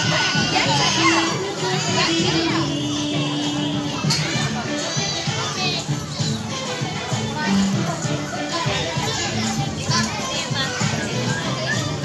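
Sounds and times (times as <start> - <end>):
children chattering and calling: 0.0 - 12.0
music playing: 0.0 - 12.0.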